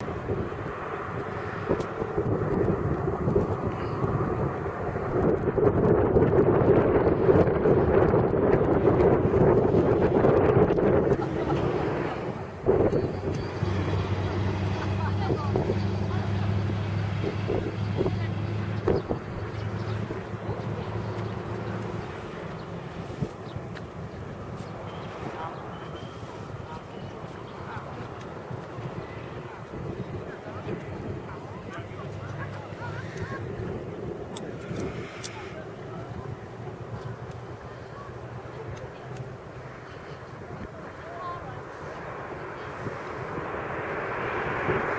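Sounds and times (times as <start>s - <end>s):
distant traffic rumble: 0.0s - 44.9s
wind noise on microphone: 0.0s - 44.9s
people's voices: 9.0s - 44.9s
vehicle engine idling: 9.6s - 43.5s.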